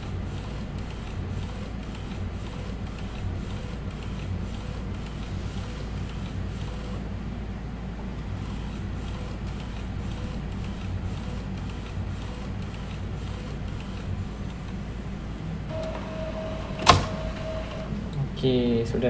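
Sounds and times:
printer mechanical whir: 0.0 - 18.4.

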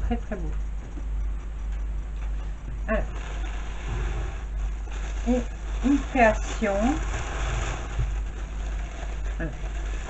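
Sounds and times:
steady low hum: 0.0 - 10.0
background noise haze: 1.4 - 10.0.

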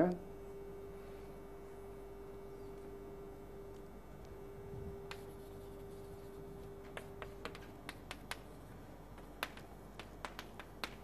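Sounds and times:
chalk tapping on blackboard: 5.1 - 11.0.

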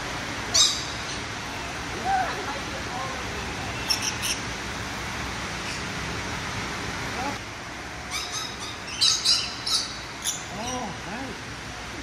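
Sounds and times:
lorikeets squawking: 0.5 - 1.8, 3.3 - 4.5, 5.6 - 5.9, 8.1 - 11.0.

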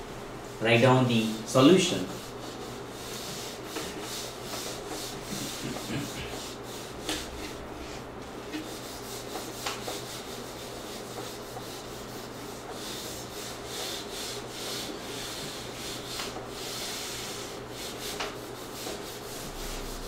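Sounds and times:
eraser rubbing on whiteboard: 1.6 - 20.0.

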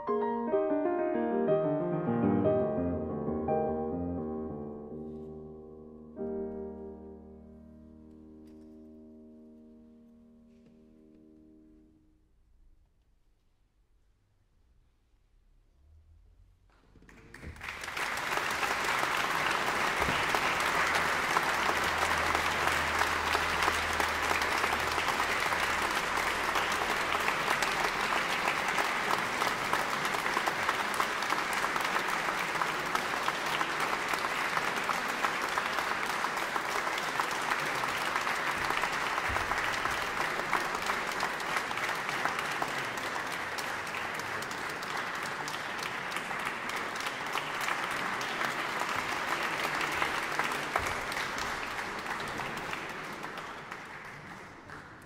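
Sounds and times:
audience applauding: 17.0 - 55.0.

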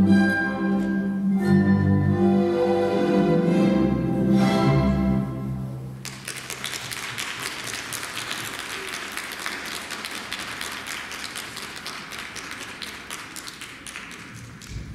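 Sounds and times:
audience applauding: 6.0 - 14.9.

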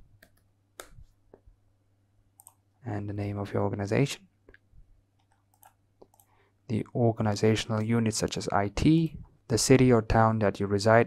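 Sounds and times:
computer clicks: 2.4 - 2.6, 5.2 - 6.4.

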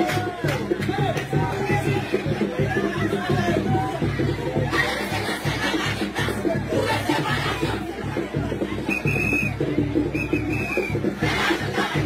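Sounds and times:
music with steady beat: 0.0 - 12.0
shrill whistle blasts: 8.9 - 11.0.

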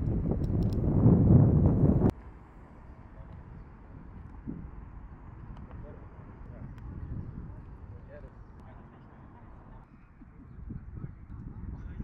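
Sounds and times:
faint outdoor background noise: 0.0 - 12.0
wind rumbling on microphone: 0.0 - 12.0.

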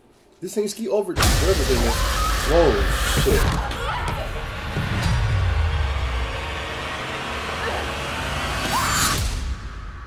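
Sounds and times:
tense background sound design: 1.2 - 10.0.

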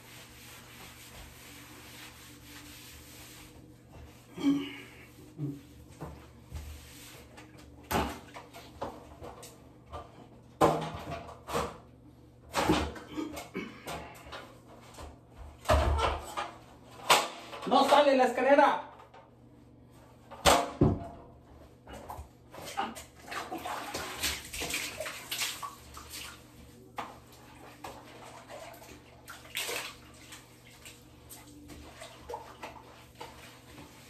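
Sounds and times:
sponge rubbing on wet tile: 0.0 - 4.3.

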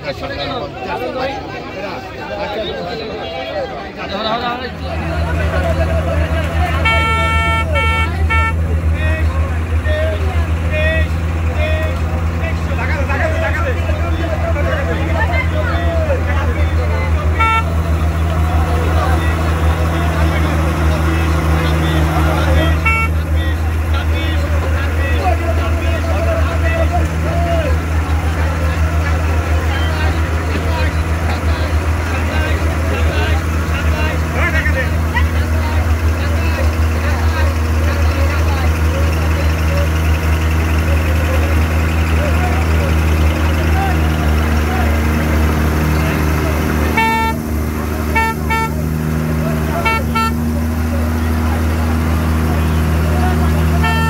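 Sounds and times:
excavator diesel engine droning: 0.0 - 54.0
horn toots: 5.2 - 9.3, 16.2 - 24.5, 42.6 - 51.0, 52.4 - 54.0.

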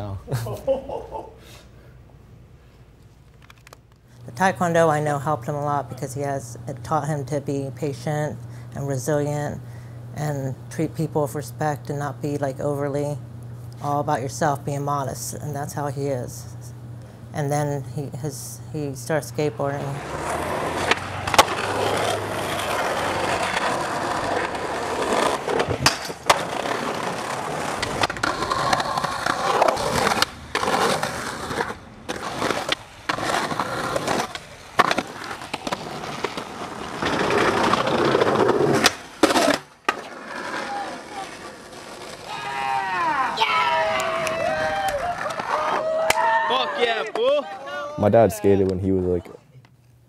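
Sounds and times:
skateboard wheels rolling on asphalt: 19.7 - 46.0
skateboard pops and clacks: 20.8 - 21.9, 25.3 - 40.1
voices calling out: 40.5 - 49.6.

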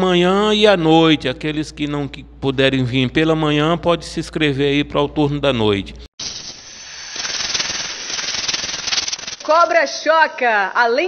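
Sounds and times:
rattlesnake rattling: 6.2 - 9.6.

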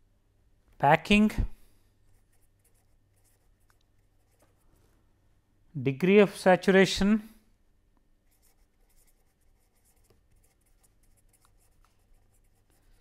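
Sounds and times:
pen scratching on paper: 2.1 - 4.6, 8.3 - 13.0.

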